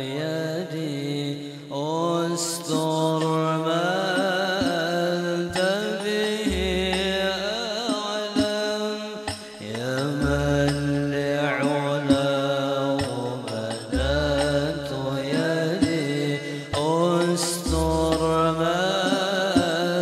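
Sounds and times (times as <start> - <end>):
man singing devotional melody: 0.0 - 20.0
deep drum note: 10.0 - 13.2.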